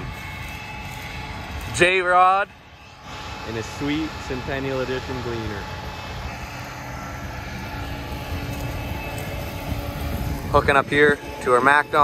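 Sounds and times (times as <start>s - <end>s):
combine harvester engine droning: 0.0s - 12.0s.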